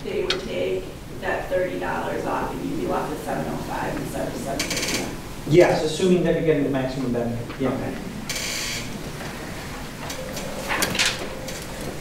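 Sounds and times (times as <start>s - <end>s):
swivel chair squeaking: 4.5s - 5.2s, 8.3s - 9.4s.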